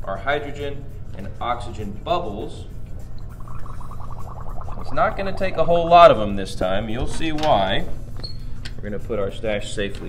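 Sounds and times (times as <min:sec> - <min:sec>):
gas bubbling through soapy solution: 0:02.9 - 0:06.6.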